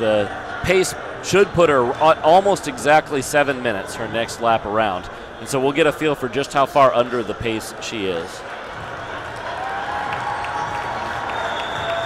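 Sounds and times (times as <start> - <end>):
crowd applauding: 8.4 - 12.0.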